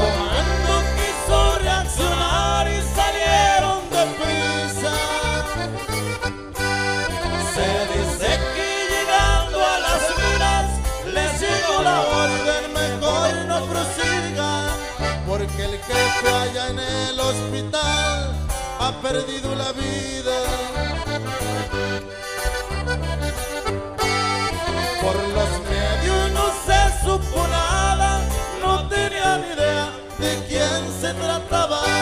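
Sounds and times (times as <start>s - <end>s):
accordion melody: 0.0s - 32.0s
stepping bass line: 0.0s - 32.0s.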